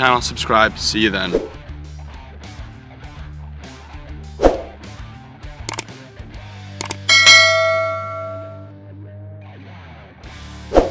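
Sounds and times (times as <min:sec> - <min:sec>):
mouse clicks: 0:06.8 - 0:07.1
notification bell ding: 0:06.8 - 0:08.7.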